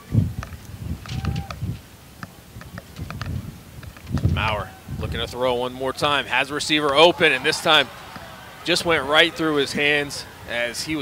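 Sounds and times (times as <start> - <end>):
wind buffeting microphone: 0.0 - 1.9, 2.5 - 11.0.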